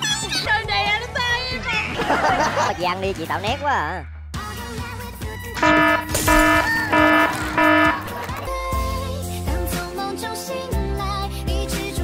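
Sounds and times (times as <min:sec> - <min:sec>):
electronic buzzer beeps: 0:05.6 - 0:08.1.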